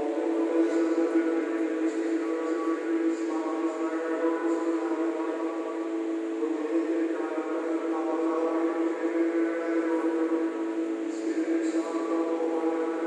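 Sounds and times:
man chanting a prayer: 0.0s - 13.0s.

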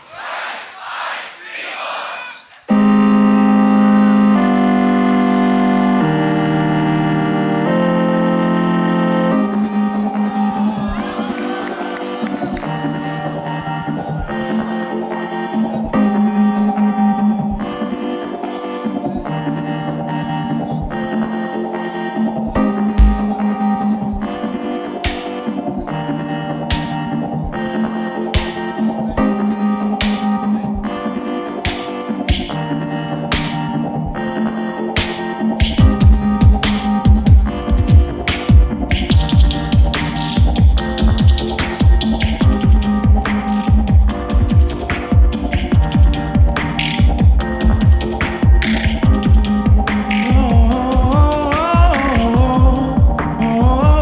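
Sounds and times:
held chords: 22.9s - 24.0s
beatbox beat: 23.0s - 23.4s, 35.0s - 54.0s
sharp snare-like hits: 23.0s - 23.4s
beatbox music: 23.0s - 23.6s, 35.0s - 54.0s.

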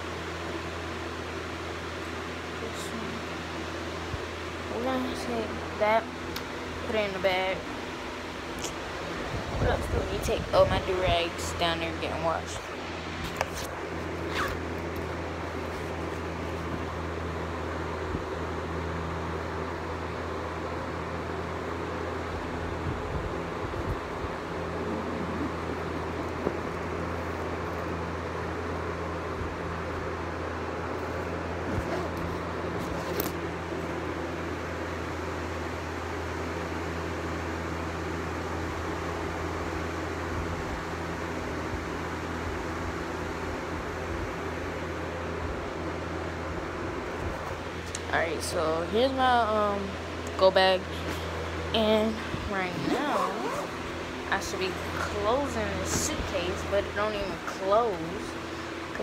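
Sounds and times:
machine hum with air noise: 0.0s - 59.0s.

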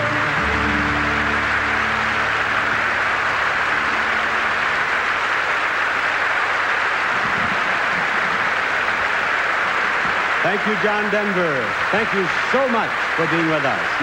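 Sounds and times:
orchestral chord: 0.0s - 5.5s
audience applauding: 0.0s - 14.0s.

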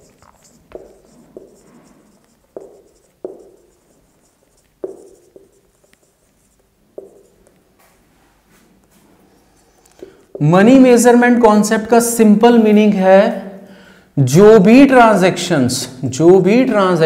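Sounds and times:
marker knocking on whiteboard: 0.0s - 7.5s, 10.0s - 10.8s
marker tip scratching: 0.0s - 7.6s.

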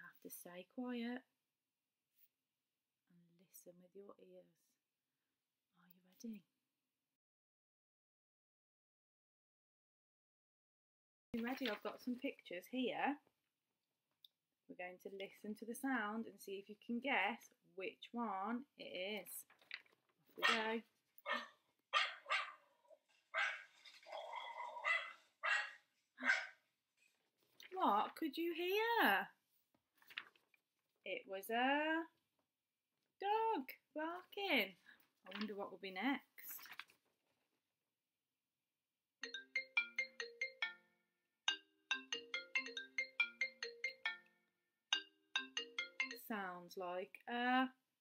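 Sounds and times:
dog barking: 20.4s - 20.6s, 21.2s - 26.6s
phone ringtone plucked notes: 39.2s - 46.3s.

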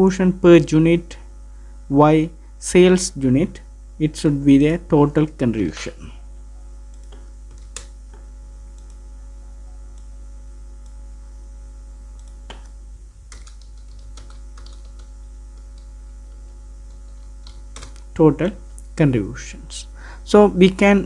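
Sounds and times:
low electrical hum: 0.0s - 21.0s
computer keyboard keystrokes: 6.9s - 7.9s, 12.2s - 18.1s.

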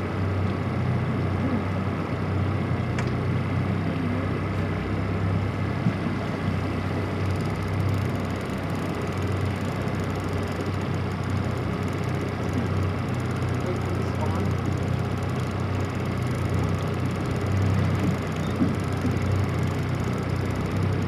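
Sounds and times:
outboard motor running: 0.0s - 21.0s
water wash around boat: 0.0s - 21.0s
wind: 0.0s - 21.0s.

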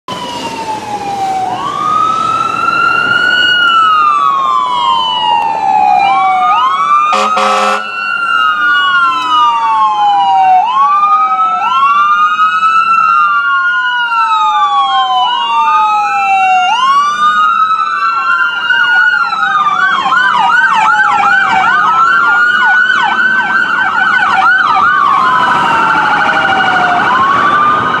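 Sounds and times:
emergency vehicle siren wailing: 0.1s - 28.0s.

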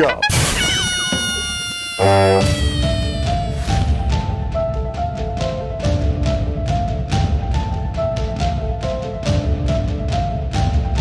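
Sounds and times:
high squeal-like tone: 0.0s - 4.1s
theme music with steady melody: 2.2s - 11.0s.

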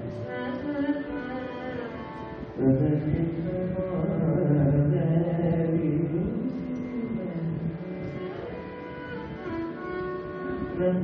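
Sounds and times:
man singing long sliding note: 2.6s - 8.9s, 9.6s - 11.0s.

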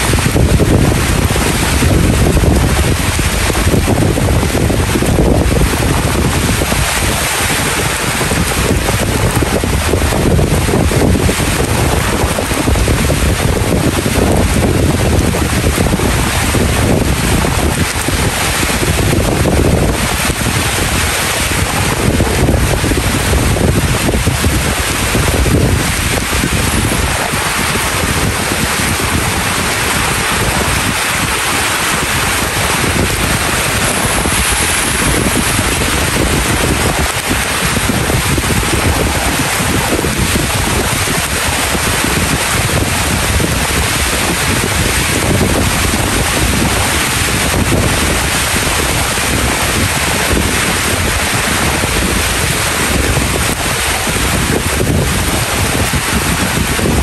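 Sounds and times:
steady rain falling: 0.0s - 57.0s
wind rumbling on microphone: 0.0s - 57.0s.

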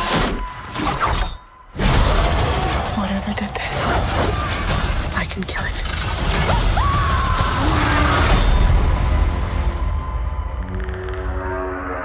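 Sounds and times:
trailer music: 0.0s - 12.0s
woman screaming: 6.5s - 8.3s.

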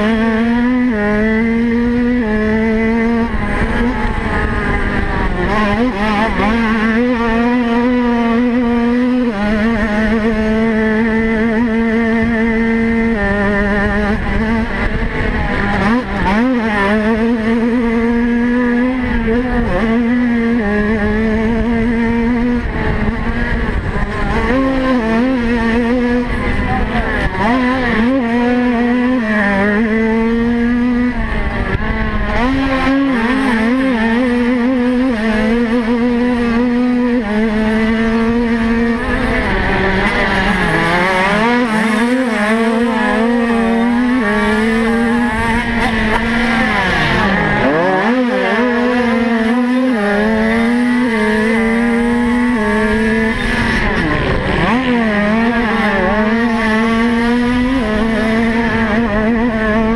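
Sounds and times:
small motorbike engine revving: 0.0s - 59.9s.

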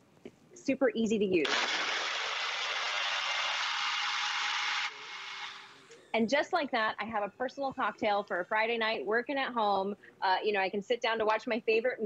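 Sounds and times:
blender running: 1.4s - 5.7s.

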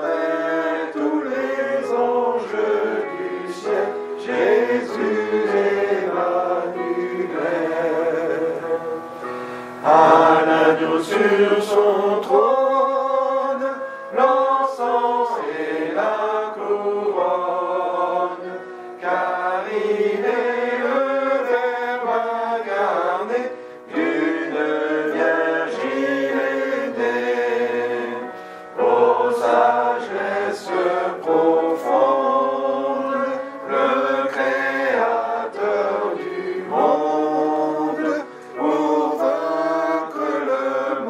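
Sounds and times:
voices singing a hymn: 0.0s - 41.0s
singers breathing: 9.1s - 9.8s, 23.5s - 23.9s, 28.2s - 28.8s, 38.2s - 38.5s.

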